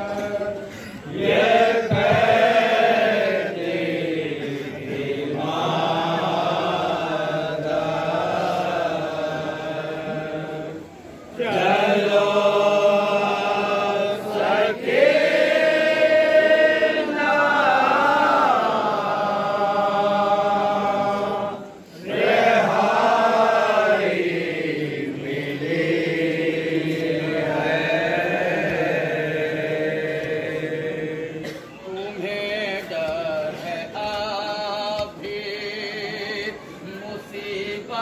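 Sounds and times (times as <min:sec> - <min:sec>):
men chanting a lament: 0:00.0 - 0:38.0.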